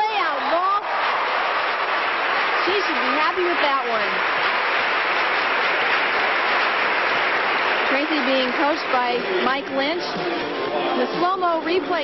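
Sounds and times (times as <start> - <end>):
crowd applauding: 0.0 - 12.0.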